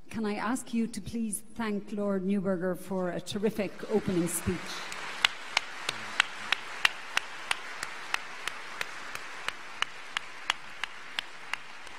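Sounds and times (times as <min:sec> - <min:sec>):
audience applauding: 0:03.8 - 0:11.9
close hands clapping steadily: 0:04.0 - 0:11.9.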